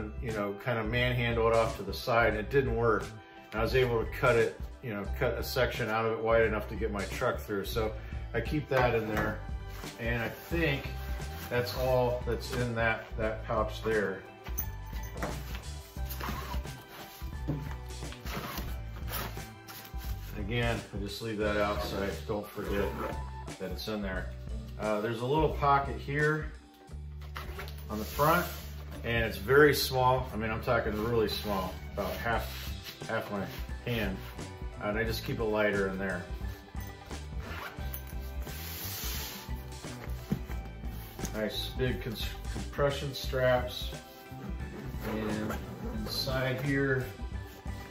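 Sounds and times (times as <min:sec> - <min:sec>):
background music with bass line: 0:00.0 - 0:47.9
backpack pocket handled: 0:14.4 - 0:20.3, 0:27.2 - 0:28.2, 0:36.5 - 0:41.5, 0:44.0 - 0:46.6
strap sliding through buckle: 0:15.0 - 0:20.3, 0:37.3 - 0:41.4
zipper pulled in rasps: 0:16.0 - 0:16.9, 0:37.4 - 0:39.5, 0:44.2 - 0:46.2.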